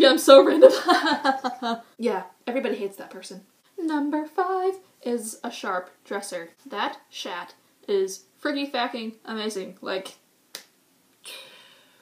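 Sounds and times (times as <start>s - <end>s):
soft breathy rush of noise: 11.3s - 12.0s.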